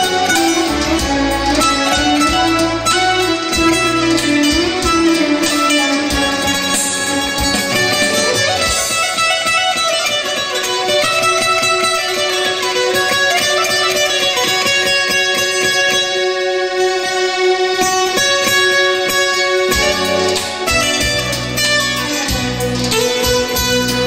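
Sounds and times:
plucked lute fast notes: 0.0 - 24.0.

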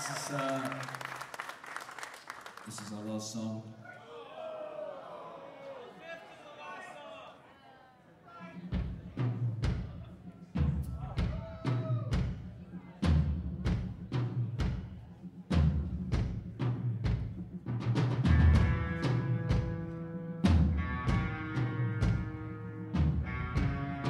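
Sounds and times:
rock band playing: 18.0 - 24.0
sustained guitar chords: 18.3 - 24.0.

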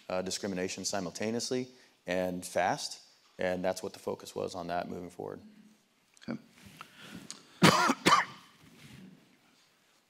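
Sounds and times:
man coughing: 7.6 - 8.5.

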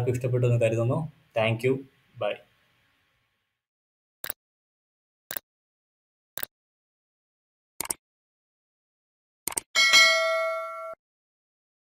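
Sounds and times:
notification bell ding: 9.8 - 11.0.

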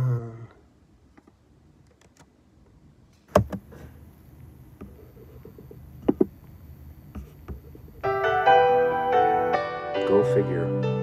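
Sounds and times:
sharp knocks on device: 3.3 - 3.6.

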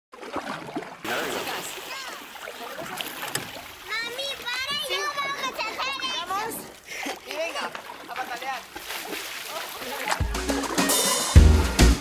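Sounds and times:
water splashing in pool: 0.1 - 11.8
children shouting and squealing: 3.8 - 6.7.

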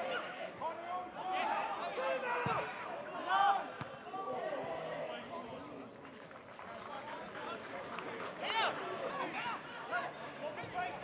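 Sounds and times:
footballers shouting: 0.0 - 5.0.

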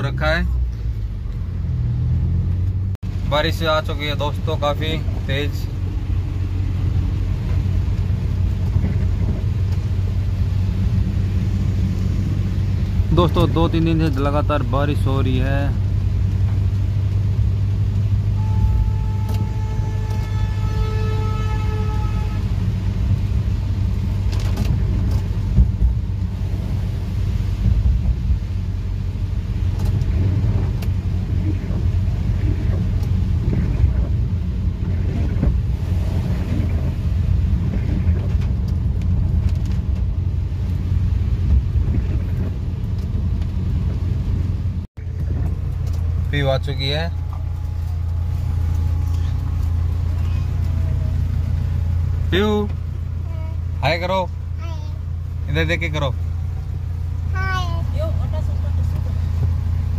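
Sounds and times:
tyres on wet road: 0.0 - 59.9
car cabin rumble: 0.1 - 59.9
heavy rain beating on car: 2.8 - 59.9.

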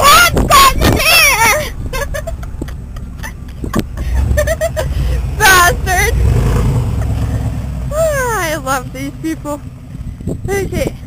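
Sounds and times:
low vehicle engine rumble: 0.0 - 11.0
wind: 0.0 - 11.0.

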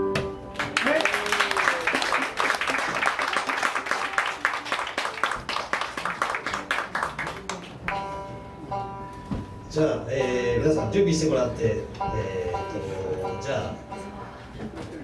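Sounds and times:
audience applause: 0.5 - 8.0
steady held note: 7.9 - 14.6.

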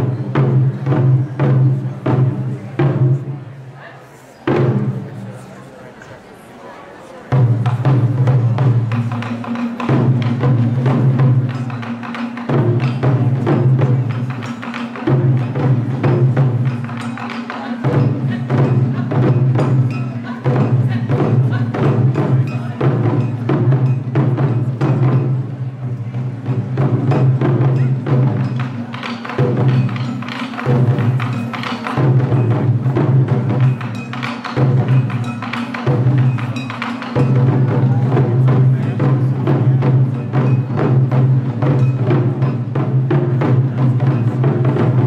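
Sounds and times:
taiko drums booming: 0.0 - 3.5, 4.4 - 5.2, 7.3 - 45.0.

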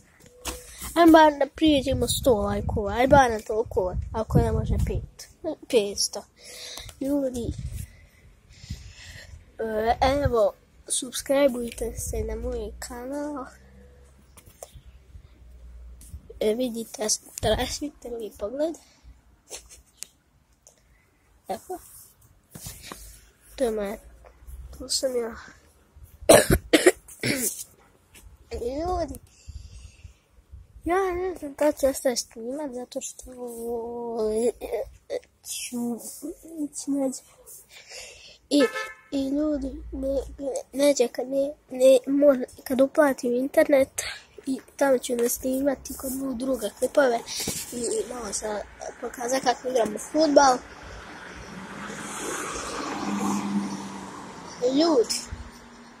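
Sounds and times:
boy coughing: 26.3 - 27.6
vehicle passing by: 48.2 - 56.0.

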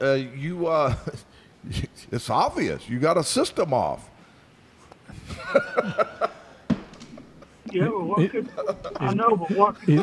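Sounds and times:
man laughing: 5.2 - 6.6, 8.1 - 10.0.

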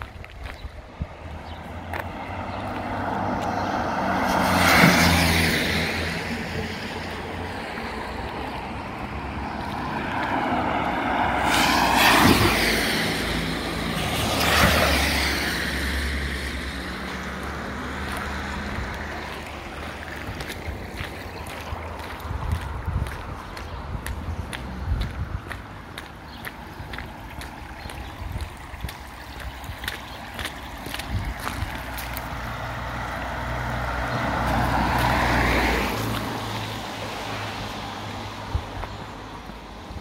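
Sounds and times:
low car engines: 0.0 - 40.0.

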